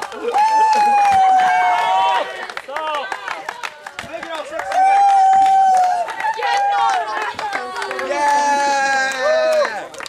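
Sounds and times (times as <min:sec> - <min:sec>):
knocks and claps: 0:00.0 - 0:10.0.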